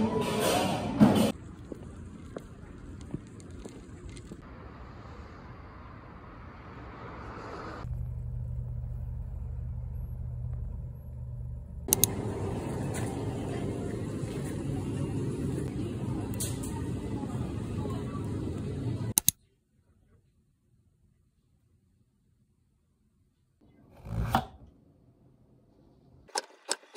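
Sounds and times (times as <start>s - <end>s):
low traffic rumble: 1.2s - 19.2s
steady low hum: 7.8s - 19.2s
sharp clicks: 11.9s - 12.1s, 19.1s - 19.4s.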